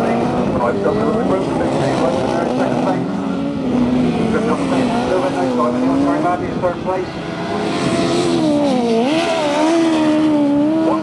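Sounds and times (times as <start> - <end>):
commentator speaking: 0.0 - 3.2, 4.2 - 7.2
racing engines: 0.0 - 11.0.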